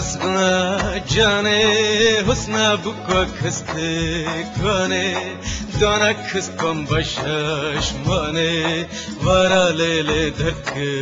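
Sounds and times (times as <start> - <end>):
man singing folk song: 0.0 - 11.0.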